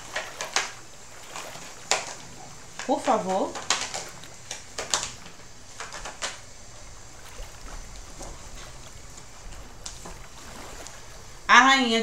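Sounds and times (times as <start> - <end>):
cards rustling: 0.0 - 6.5.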